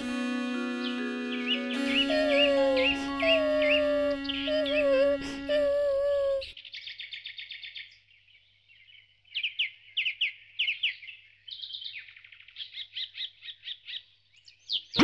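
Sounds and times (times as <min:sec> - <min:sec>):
background music: 0:00.0 - 0:06.5
birds chirping and trilling: 0:00.7 - 0:15.0.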